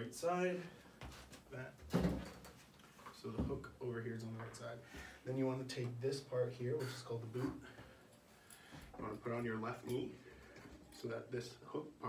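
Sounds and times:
chair thump as person sits: 1.9 - 2.5.

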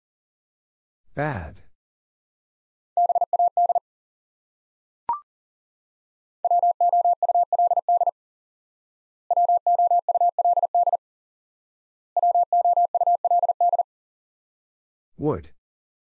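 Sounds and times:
morse code beeps: 3.0 - 3.8, 6.4 - 8.1, 9.3 - 11.0, 12.2 - 13.8.

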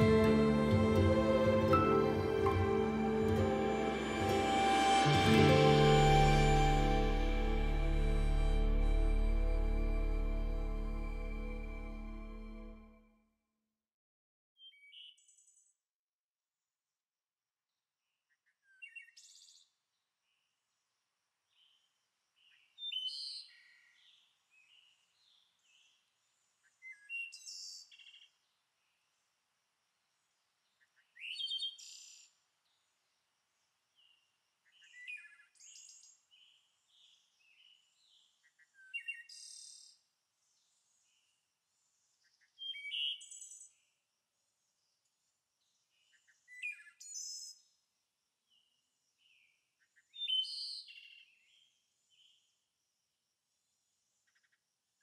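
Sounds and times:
bird singing: 42.2 - 43.8, 48.5 - 52.5.

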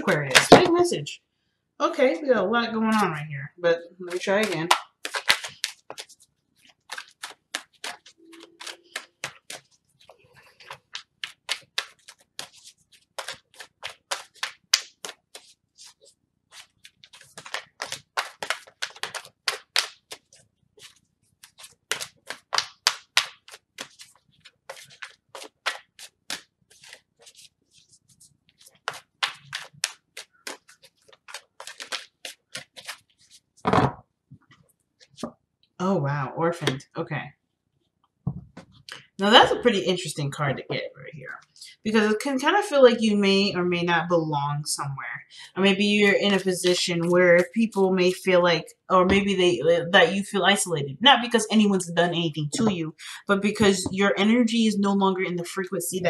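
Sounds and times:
cards being shuffled: 0.3 - 0.7, 4.1 - 35.3
thump: 33.7 - 34.0, 38.3 - 38.7.

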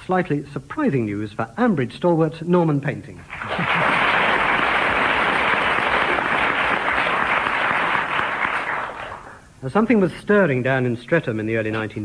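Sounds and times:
audience laughter: 3.3 - 6.2
audience applauding: 3.3 - 9.5.

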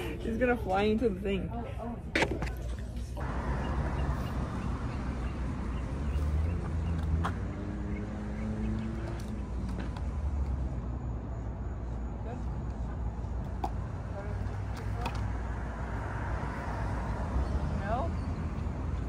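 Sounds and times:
traffic rumble: 0.0 - 19.0
wind: 0.0 - 19.0.

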